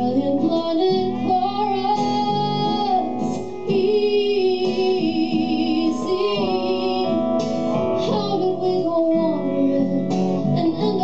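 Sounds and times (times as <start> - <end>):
woman singing long notes: 0.0 - 7.3
strummed acoustic guitar: 0.0 - 11.0.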